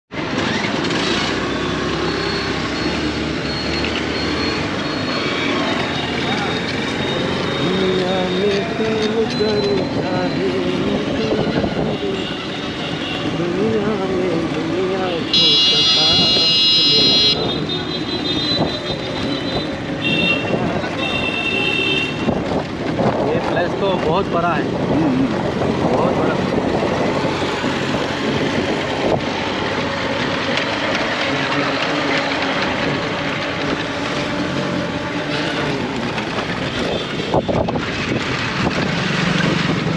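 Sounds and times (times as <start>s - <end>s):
street traffic: 0.1s - 39.9s
short horn honks: 15.3s - 17.5s
vehicle horn blaring: 15.3s - 22.4s.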